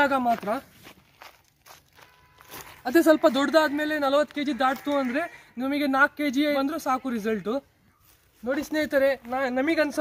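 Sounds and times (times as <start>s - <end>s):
man speaking: 0.0s - 0.7s, 2.8s - 10.0s
footsteps on dry leaves: 0.0s - 5.5s, 7.8s - 10.0s.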